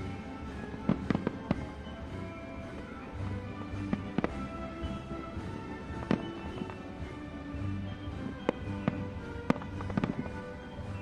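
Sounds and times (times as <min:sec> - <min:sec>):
fireworks bangs: 0:00.0 - 0:11.0
music with sustained notes: 0:00.0 - 0:11.0.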